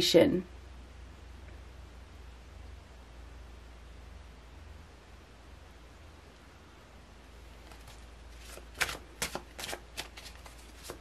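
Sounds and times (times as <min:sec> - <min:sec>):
cards being shuffled: 0:07.6 - 0:11.0.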